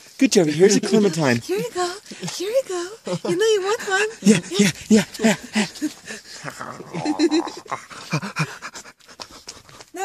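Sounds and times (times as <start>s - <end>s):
man panting: 4.0s - 6.5s, 7.6s - 9.8s.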